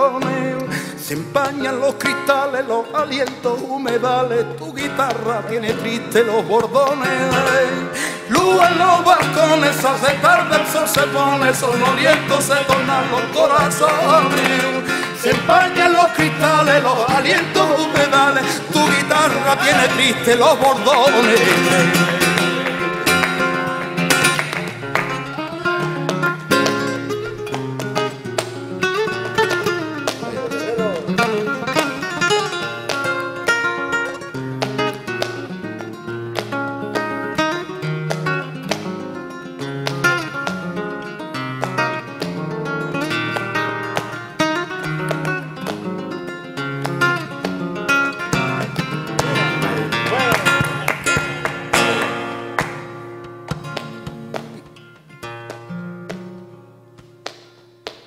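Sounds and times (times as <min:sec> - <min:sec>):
flamenco guitar playing: 0:00.0 - 0:58.0
rhythmic hand-clapping: 0:00.0 - 0:58.0.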